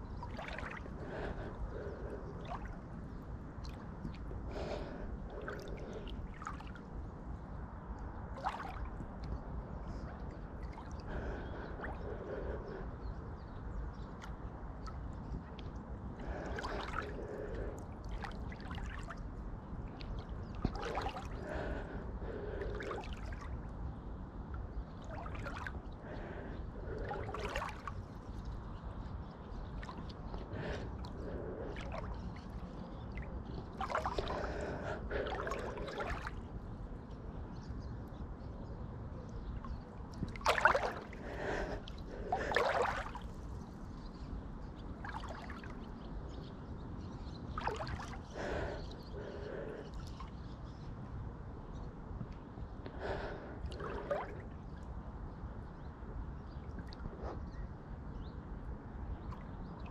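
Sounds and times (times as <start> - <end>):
swishing and gurgling water: 0.0 - 59.9
swimmer breathing: 0.4 - 3.8, 4.4 - 6.8, 9.9 - 13.2, 16.2 - 18.3, 20.7 - 23.5, 25.0 - 28.1, 29.8 - 36.5, 40.4 - 43.4, 47.6 - 50.2, 52.9 - 54.6.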